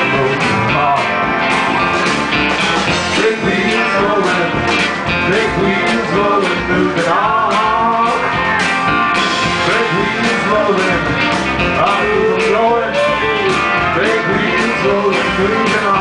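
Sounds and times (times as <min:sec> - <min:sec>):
country band playing: 0:00.0 - 0:16.0
drums: 0:00.0 - 0:16.0
electric bass: 0:00.0 - 0:16.0.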